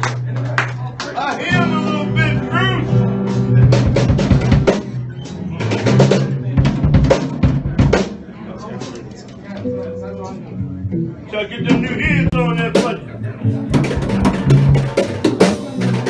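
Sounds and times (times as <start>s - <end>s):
acoustic guitar and drums playing: 1.5s - 8.9s, 10.9s - 16.0s
loud drum hits: 5.9s - 8.2s, 11.7s - 16.0s.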